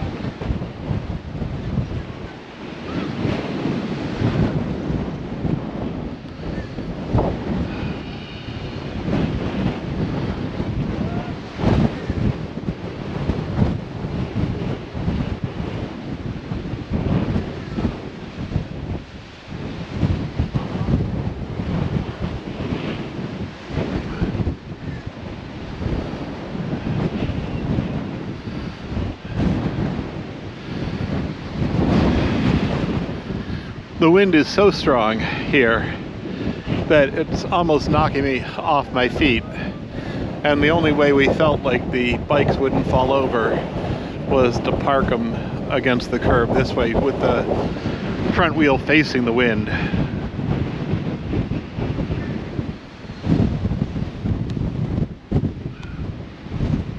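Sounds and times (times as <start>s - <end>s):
gusty wind on microphone: 0.0s - 56.9s.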